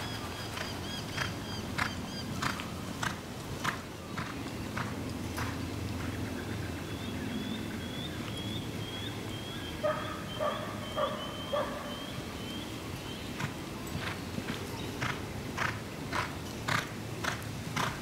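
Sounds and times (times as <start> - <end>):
horse hoofbeats on sand: 0.0 - 6.2, 13.1 - 18.0
birds chirping: 0.0 - 16.7
harsh bird calls: 6.0 - 13.5.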